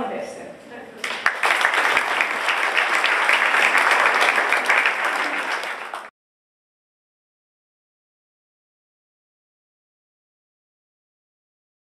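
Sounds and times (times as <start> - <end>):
audience applauding: 1.0 - 6.1.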